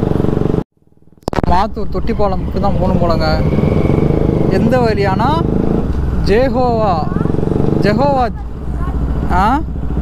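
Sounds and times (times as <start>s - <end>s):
motorcycle engine running: 0.0s - 0.6s, 2.2s - 10.0s.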